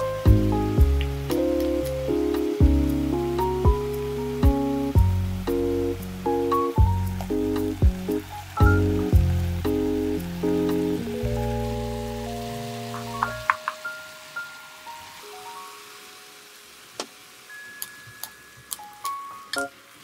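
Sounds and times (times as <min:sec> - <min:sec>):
light background music: 0:00.0 - 0:19.9
radish sizzling in a pan: 0:00.0 - 0:20.0.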